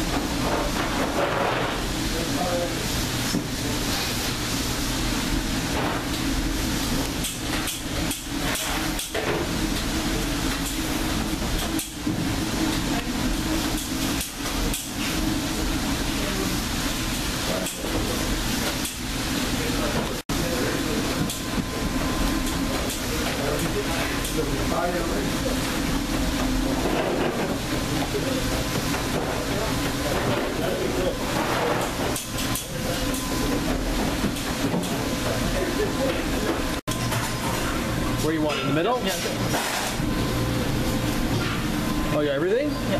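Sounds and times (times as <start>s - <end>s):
kitchen background noise: 0.0s - 42.9s.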